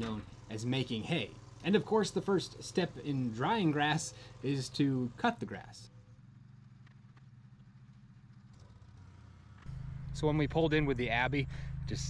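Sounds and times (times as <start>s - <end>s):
closer engine hum: 0.0s - 12.0s
small mower engine running: 0.0s - 12.0s.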